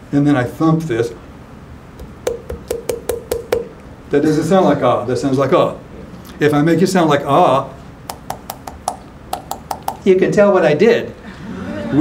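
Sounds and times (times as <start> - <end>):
fingers thumping throat: 2.0 - 3.8, 8.1 - 10.1.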